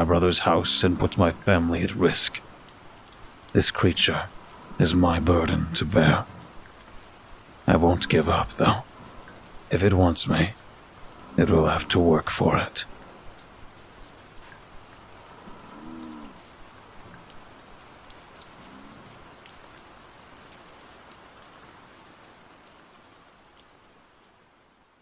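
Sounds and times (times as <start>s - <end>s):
raindrop ticks: 0.0s - 25.0s
steady rain: 0.0s - 25.0s.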